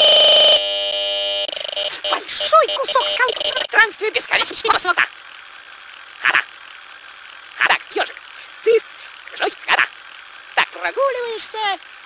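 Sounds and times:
short sharp vocal bursts: 0:01.5 - 0:03.7.

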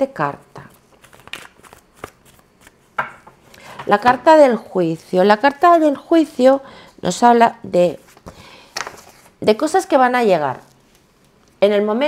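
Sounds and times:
cards rustling: 0:00.7 - 0:03.0, 0:08.1 - 0:09.4.

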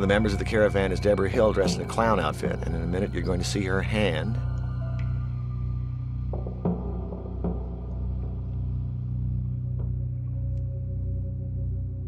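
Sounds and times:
horror score drone: 0:00.0 - 0:12.0.

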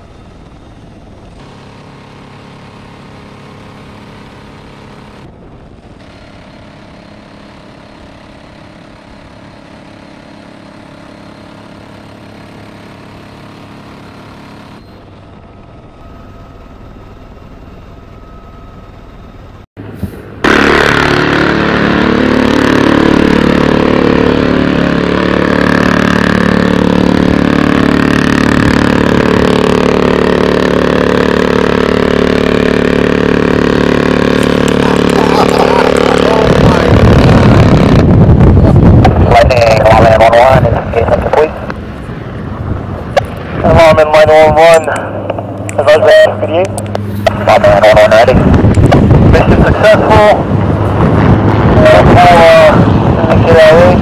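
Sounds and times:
helicopter engines and rotor: 0:00.0 - 0:54.0.

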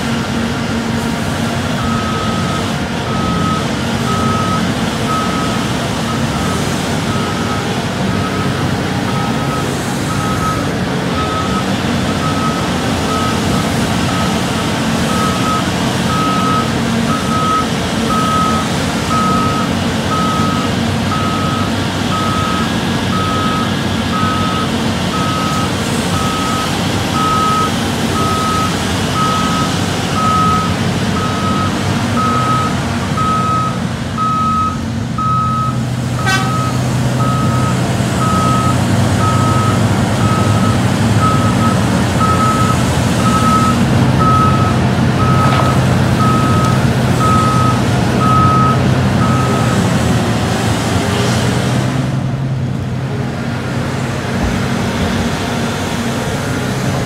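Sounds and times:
diesel engine drone: 0:00.0 - 0:57.0
reversing alarm beeping: 0:01.8 - 0:49.9.

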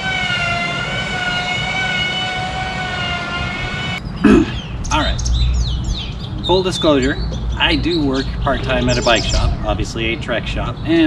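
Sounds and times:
emergency siren wailing: 0:00.0 - 0:04.0.

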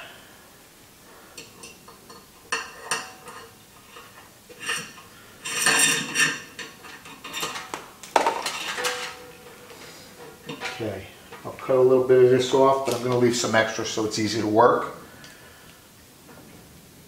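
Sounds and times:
wiring clinking and rattling: 0:01.4 - 0:11.6.

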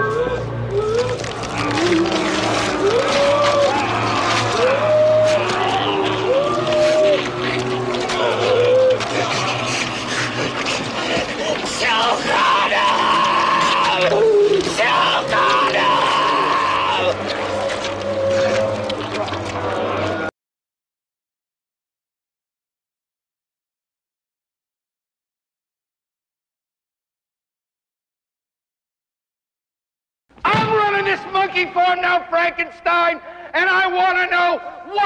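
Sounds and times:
man screaming: 0:00.0 - 0:09.3, 0:11.6 - 0:17.3
low groaning voices: 0:00.0 - 0:20.3
wet squelching tearing: 0:00.7 - 0:20.3.

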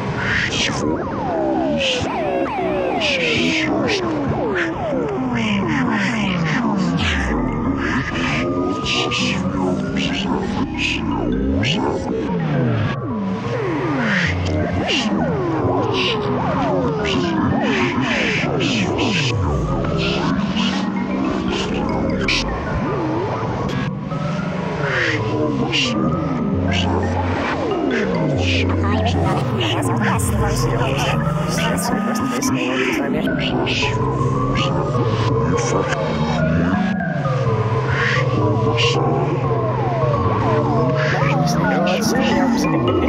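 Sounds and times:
synthesizer downward pitch sweeps: 0:00.8 - 0:43.0.

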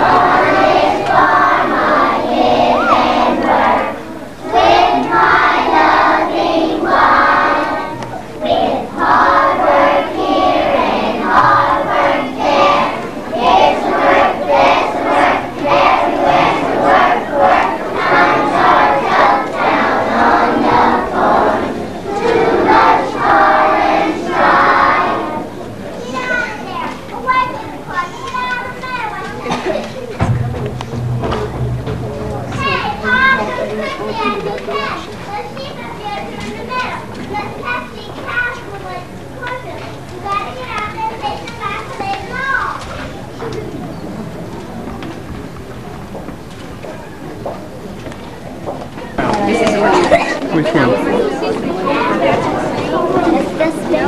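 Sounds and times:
children calling out: 0:00.0 - 0:06.2
children singing in unison: 0:00.0 - 0:25.6
children chattering: 0:00.0 - 0:54.0.

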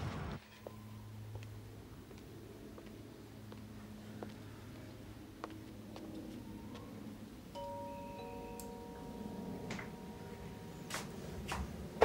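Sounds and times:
two-note doorbell chime: 0:07.5 - 0:11.0.

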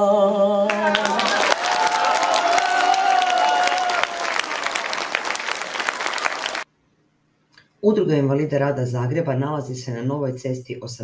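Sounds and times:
audience applauding: 0:00.7 - 0:06.7.

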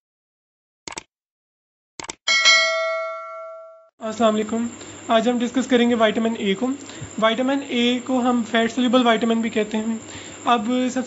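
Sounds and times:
notification bell ding: 0:02.3 - 0:03.9.

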